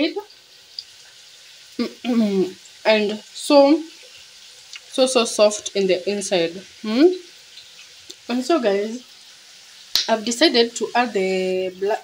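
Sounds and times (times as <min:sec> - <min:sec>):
woman speaking: 0:00.0 - 0:00.2, 0:01.8 - 0:03.8, 0:04.9 - 0:07.2, 0:08.3 - 0:09.0, 0:10.1 - 0:12.0
chips sizzling in hot oil: 0:00.0 - 0:12.0.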